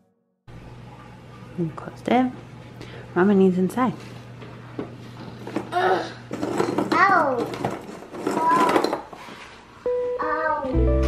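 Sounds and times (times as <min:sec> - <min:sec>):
toddler vocalizing: 0:05.7 - 0:06.2.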